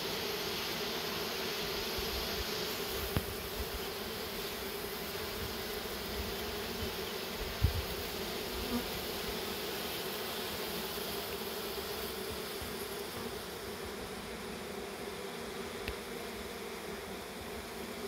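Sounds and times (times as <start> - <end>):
honeybees buzzing: 0.0 - 18.0.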